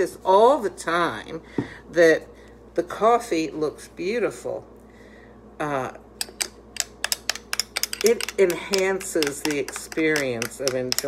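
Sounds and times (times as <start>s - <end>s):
metal spoon clinking in glass: 6.2s - 11.0s.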